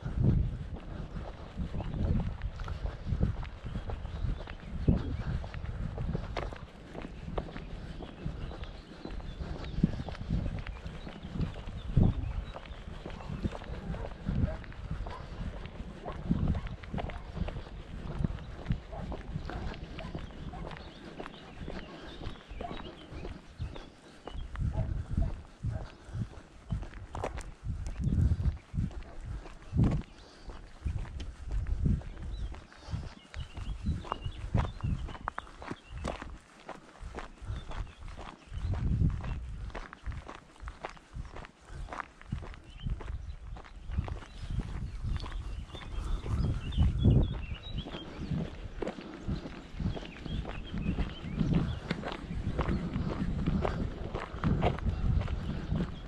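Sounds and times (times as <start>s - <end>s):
footsteps on gravel: 0.0s - 56.0s.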